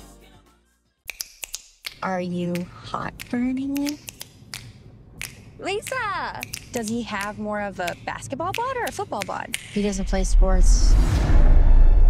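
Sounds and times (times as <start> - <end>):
sharp clicks: 1.1 - 9.8.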